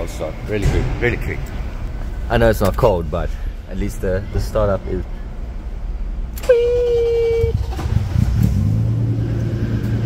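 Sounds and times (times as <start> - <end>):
car engine idling: 0.0 - 10.0
car starter whine: 6.3 - 10.0.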